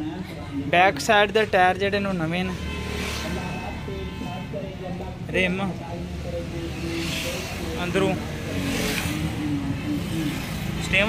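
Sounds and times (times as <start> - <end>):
indistinct background voices: 3.0 - 11.0.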